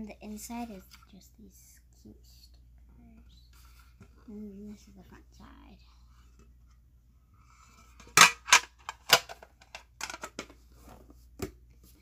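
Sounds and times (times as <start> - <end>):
person speaking softly: 0.0 - 6.3.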